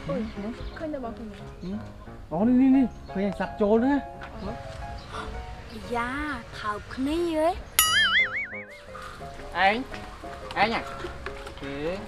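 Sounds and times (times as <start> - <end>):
background music: 0.0 - 12.0
cartoon boing sound effect: 7.8 - 9.0.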